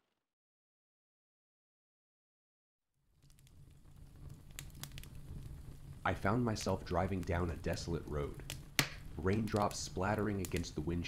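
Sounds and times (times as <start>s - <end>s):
fireplace crackling: 3.0s - 11.0s
sharp pops from fire: 3.1s - 10.8s
rain: 3.2s - 11.0s.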